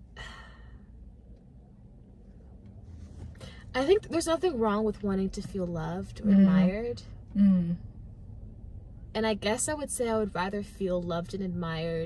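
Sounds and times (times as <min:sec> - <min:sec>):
faint steady low hum: 0:00.0 - 0:12.0
person sighing: 0:00.2 - 0:00.8.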